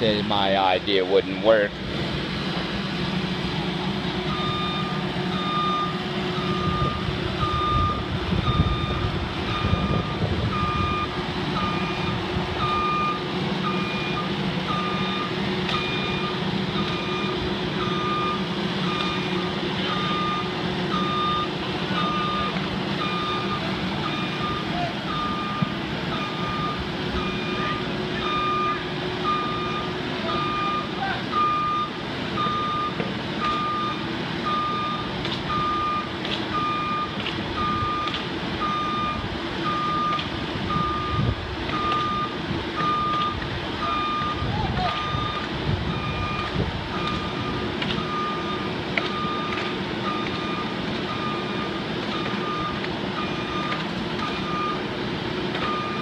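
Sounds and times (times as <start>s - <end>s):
engine running: 0.0s - 56.0s
motion alarm beeping: 4.3s - 54.9s, 55.6s - 56.0s.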